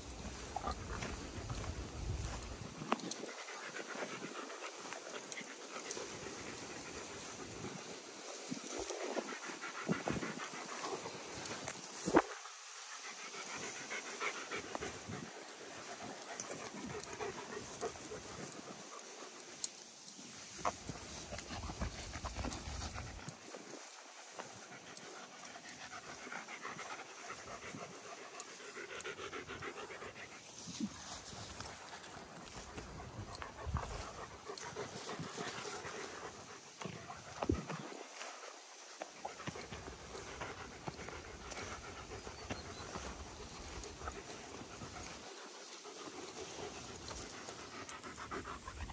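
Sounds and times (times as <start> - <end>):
dogs panting: 0.0 - 48.9.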